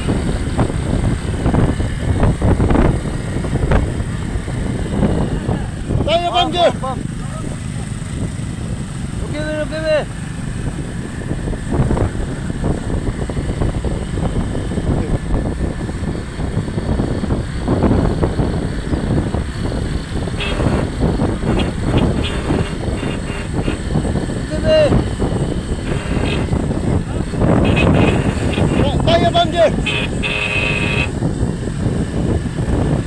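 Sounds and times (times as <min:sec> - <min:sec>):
motorcycle engine running: 0:00.0 - 0:33.0
road rumble: 0:00.0 - 0:33.0
wind noise: 0:00.0 - 0:33.0.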